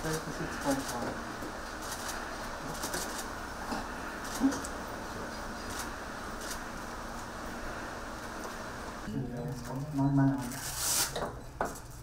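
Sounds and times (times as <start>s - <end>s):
room hiss: 0.0s - 9.1s.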